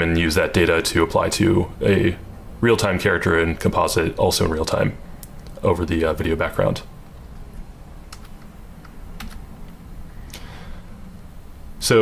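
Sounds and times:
steady low hum: 0.0 - 12.0
computer keyboard clicks: 8.1 - 9.4.

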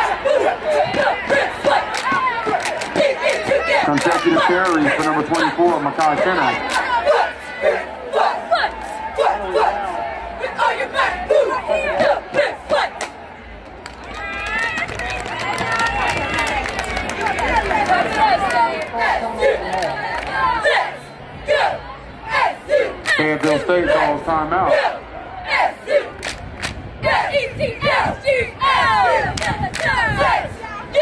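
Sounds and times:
cheerleaders chanting together: 0.0 - 13.2, 17.2 - 31.0.

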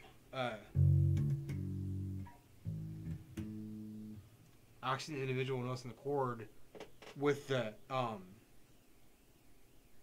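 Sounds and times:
electric bass notes plucked: 0.7 - 4.3.

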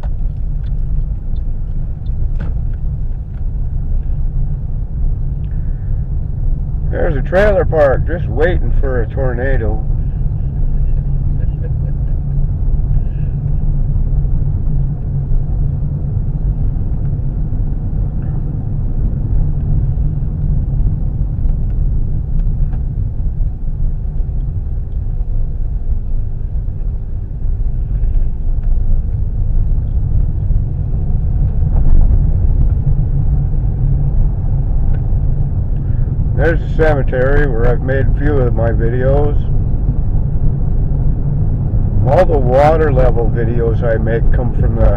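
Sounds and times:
car engine: 0.0 - 44.9
tyres rumbling on dirt road: 0.0 - 44.9.

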